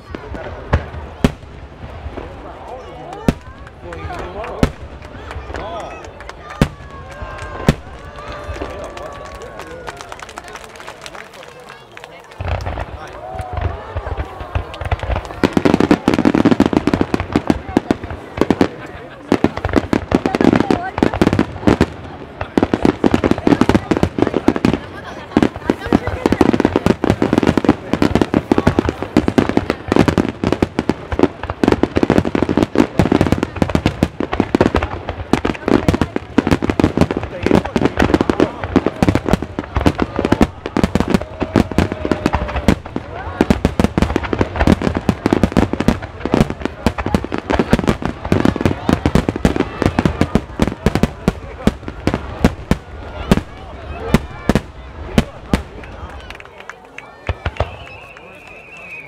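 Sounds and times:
fireworks bursting and crackling: 0.0s - 59.0s.

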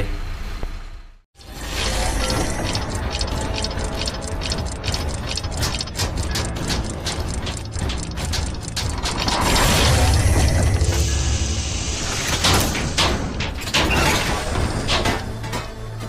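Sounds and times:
ratcheting clicks of turning gears: 1.7s - 10.6s.

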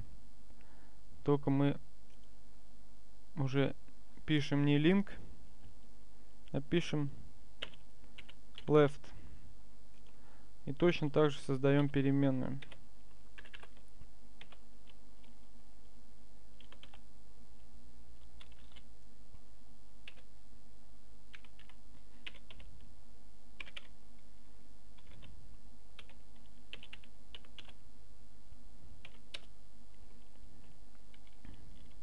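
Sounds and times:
low electrical hum: 0.0s - 32.0s
computer keyboard typing: 7.6s - 8.7s, 11.8s - 15.4s, 16.6s - 17.0s, 18.2s - 18.9s, 20.0s - 20.3s, 21.3s - 22.9s, 23.6s - 24.0s, 25.0s - 25.4s, 26.0s - 27.8s, 29.0s - 32.0s.

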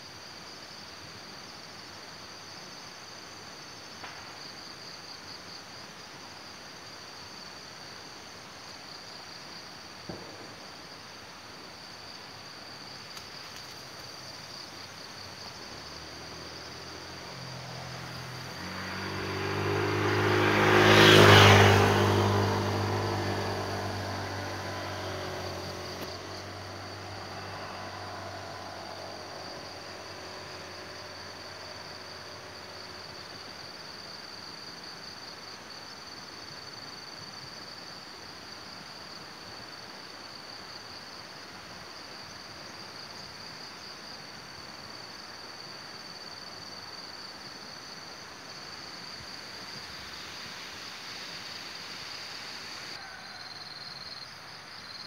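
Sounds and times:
motor vehicle passing: 15.8s - 33.4s.

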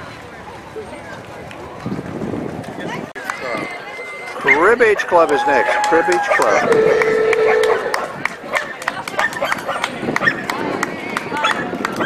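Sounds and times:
people talking: 0.0s - 12.0s
street background noise: 0.0s - 12.0s.

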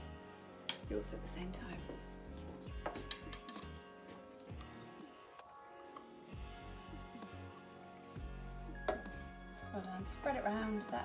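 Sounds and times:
soft background music: 0.0s - 11.0s
spoons clinking on tin: 2.9s - 3.8s.

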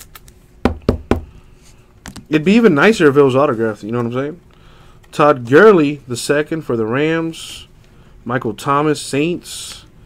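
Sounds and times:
knocks on a tabletop: 0.7s - 1.3s.

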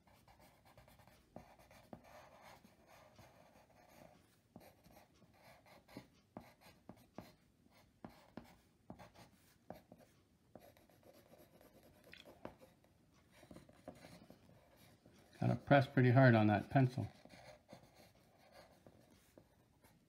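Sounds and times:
pencil scratching on paper: 0.0s - 20.0s.

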